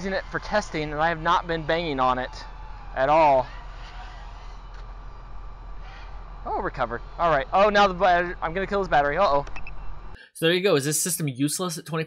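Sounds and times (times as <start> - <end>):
low hum: 0.0 - 10.2.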